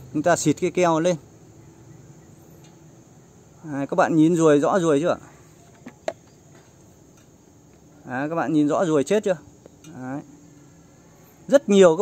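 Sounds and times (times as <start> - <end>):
high insect chirring: 0.0 - 12.0.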